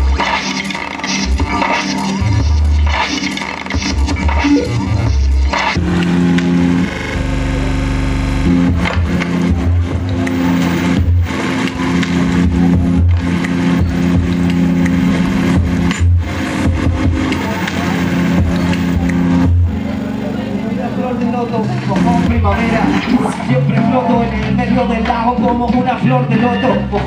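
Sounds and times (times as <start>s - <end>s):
pulsing bass beat: 0.0s - 27.0s
held low synth notes: 1.0s - 27.0s.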